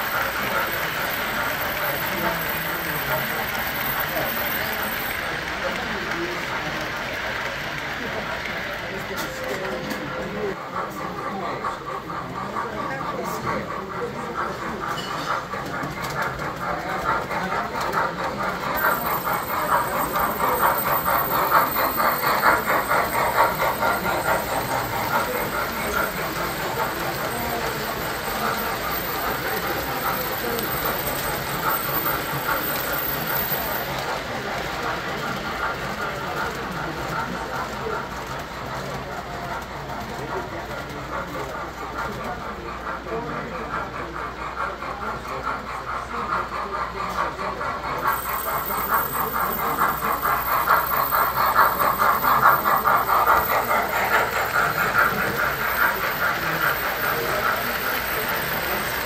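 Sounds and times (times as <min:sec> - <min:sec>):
model train rolling on metal track: 0:00.0 - 0:59.0
room chatter: 0:00.0 - 0:59.0.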